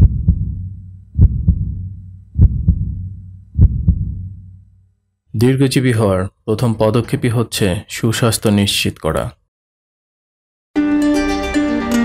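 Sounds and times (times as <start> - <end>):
heartbeat thumps: 0.0 - 4.7
low hum: 0.0 - 5.2.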